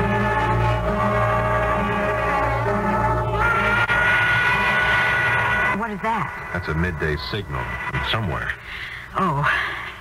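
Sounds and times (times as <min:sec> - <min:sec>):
siren-like high whine: 0:00.0 - 0:08.6.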